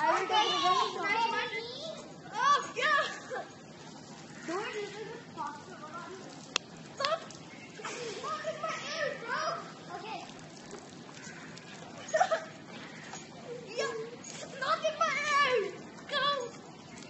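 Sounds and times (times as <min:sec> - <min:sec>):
children shouting and calling: 0:00.0 - 0:03.6, 0:07.0 - 0:10.3, 0:11.1 - 0:17.0.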